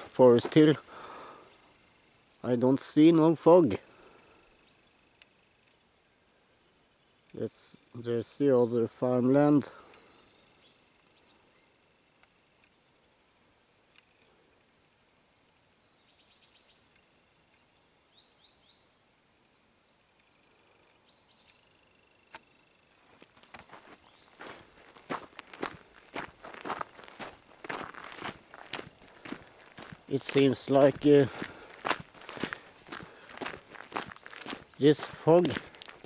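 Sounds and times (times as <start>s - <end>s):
footsteps on gravel: 0.0s - 1.1s, 23.0s - 36.0s
faint bird chirps: 4.2s - 14.6s, 15.2s - 24.6s, 32.3s - 35.5s.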